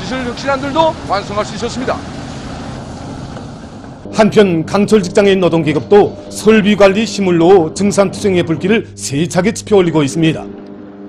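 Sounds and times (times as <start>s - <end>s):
steady industrial rushing noise: 0.0s - 11.0s.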